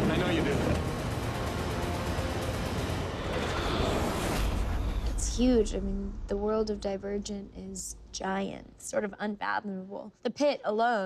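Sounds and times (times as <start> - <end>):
film score music: 0.0 - 8.2.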